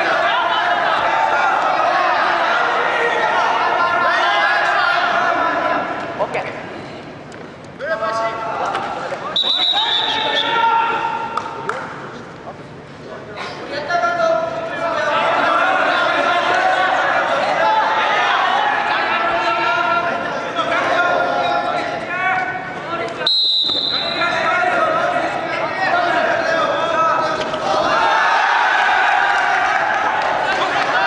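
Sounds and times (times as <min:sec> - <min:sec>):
people shouting long calls: 0:00.0 - 0:05.9
referee's whistle blast: 0:09.4 - 0:10.6, 0:23.3 - 0:24.4.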